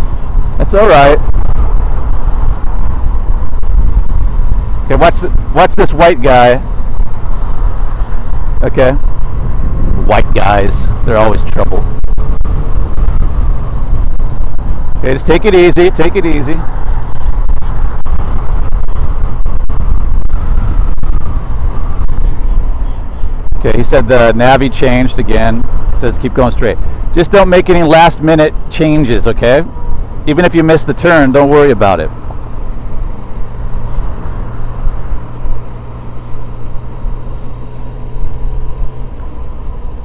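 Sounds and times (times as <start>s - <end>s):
motorcycle engine rumble: 0.0s - 40.0s
wind noise: 0.0s - 40.0s.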